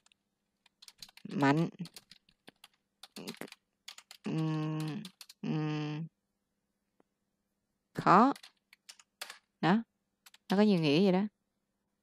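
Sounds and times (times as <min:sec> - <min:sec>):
computer keyboard typing: 0:00.0 - 0:05.5, 0:08.2 - 0:09.5, 0:10.2 - 0:11.1
person humming: 0:04.3 - 0:06.1.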